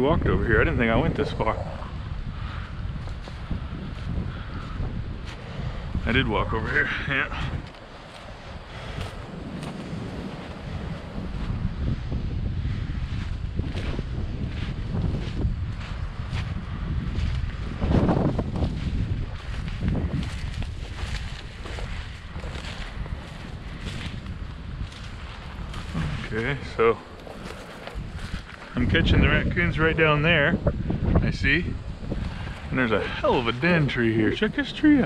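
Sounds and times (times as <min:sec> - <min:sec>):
wind rumbling on microphone: 0:00.0 - 0:35.0
footsteps crunching through snow: 0:01.1 - 0:11.9, 0:12.8 - 0:29.9.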